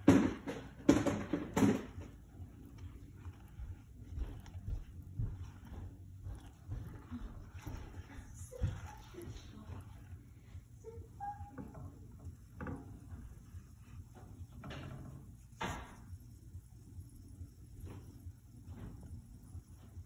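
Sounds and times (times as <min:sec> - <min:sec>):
faint low hum: 0:00.0 - 0:20.0.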